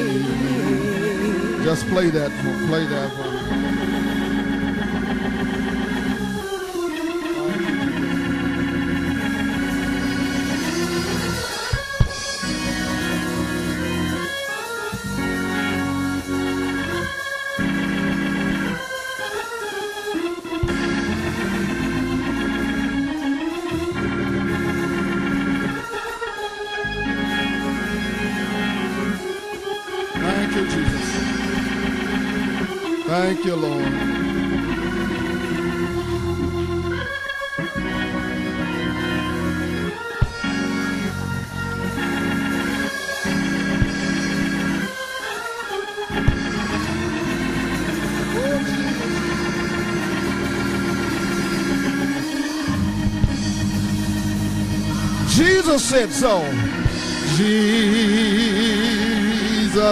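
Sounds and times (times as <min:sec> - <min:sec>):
organ playing held chords: 0:00.0 - 0:59.9.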